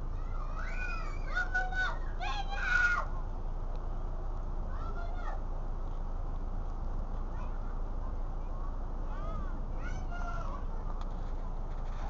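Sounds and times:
steady low rumble: 0.0s - 12.0s
child calling: 0.2s - 3.1s, 9.1s - 10.7s.

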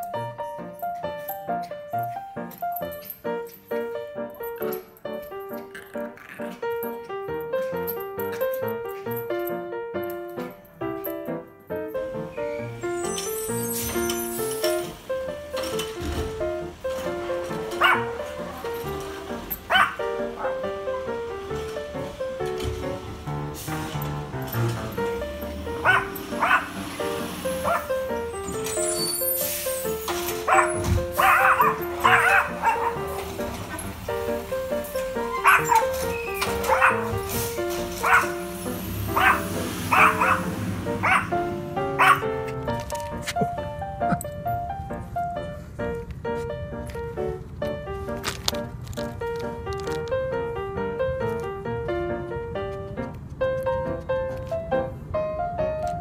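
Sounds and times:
background music: 0.0s - 56.0s
small dog barking: 17.8s - 18.7s, 19.6s - 20.6s, 25.8s - 26.8s, 27.6s - 28.0s, 30.4s - 33.8s, 35.3s - 37.2s, 37.9s - 38.4s, 39.1s - 41.4s, 42.0s - 42.3s.

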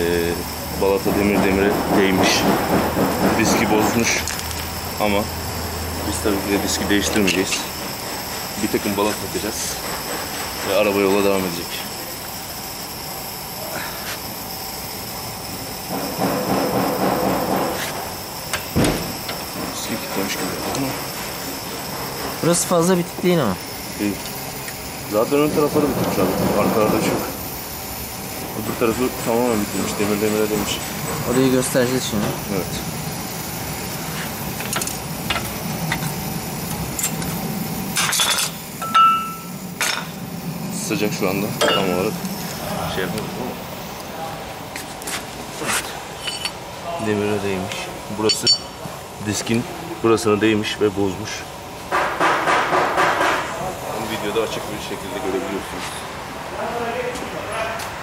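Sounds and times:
steady low hum: 0.0s - 57.7s
steady workshop hiss: 0.0s - 58.0s
sharp knock: 18.8s - 19.2s
metal tool clicking and scraping: 45.7s - 46.6s.

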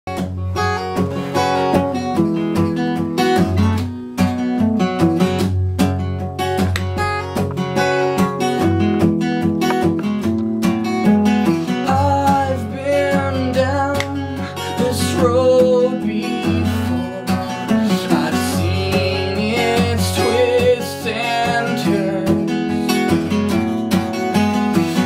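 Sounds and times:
acoustic guitar chords: 0.1s - 25.0s.

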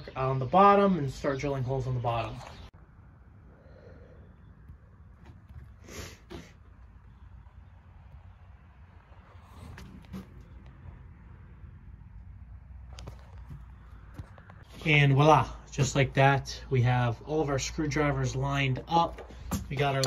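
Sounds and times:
low handling rumble: 0.7s - 20.0s
knocks and rustles: 4.6s - 11.2s.

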